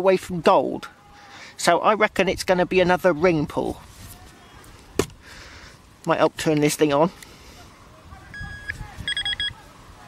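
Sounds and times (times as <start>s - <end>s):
faint hiss: 3.6s - 10.0s.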